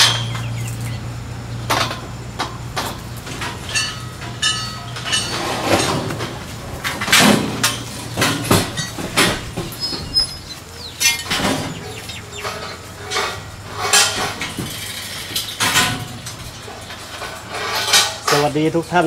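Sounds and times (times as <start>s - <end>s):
sharp ringing metal knocks: 0.0s - 0.9s, 1.7s - 18.4s
metal poles clanking and scraping: 0.0s - 19.0s.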